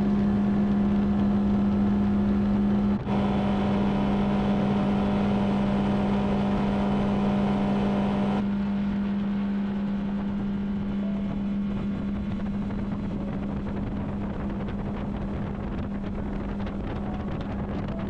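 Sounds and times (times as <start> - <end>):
outboard motor running: 0.0 - 18.0
water and hull noise: 0.0 - 18.0.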